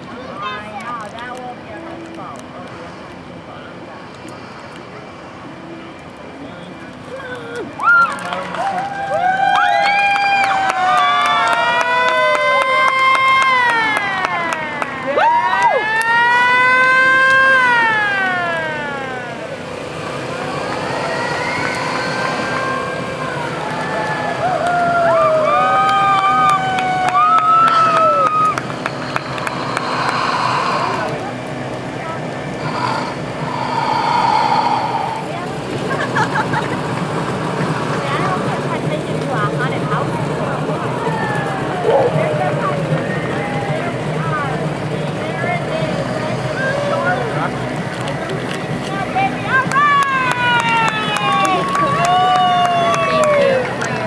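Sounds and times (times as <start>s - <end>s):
voices of onlookers: 0.0s - 54.0s
sirens wailing: 7.6s - 36.6s, 37.2s - 54.0s.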